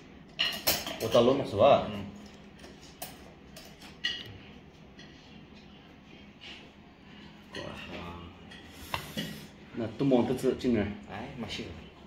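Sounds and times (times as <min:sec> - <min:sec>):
low room hum: 0:00.0 - 0:12.0
cutlery clinking on tableware: 0:00.3 - 0:04.3.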